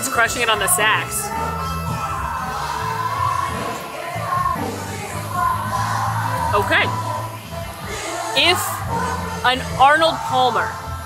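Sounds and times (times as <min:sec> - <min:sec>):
bass line: 0:00.0 - 0:11.0.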